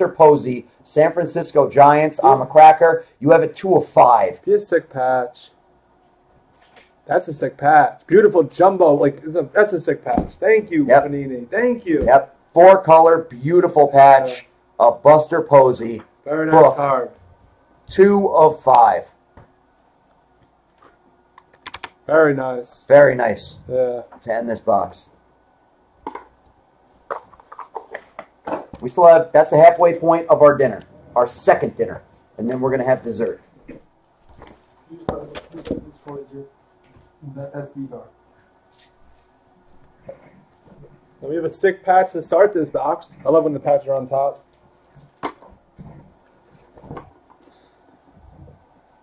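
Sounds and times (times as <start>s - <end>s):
cards tapping and rustling: 27.0s - 28.9s.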